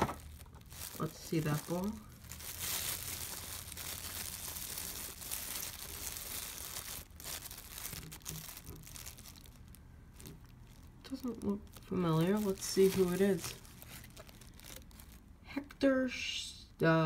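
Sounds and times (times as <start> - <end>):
plastic wrapping crinkling: 0.0 - 15.4.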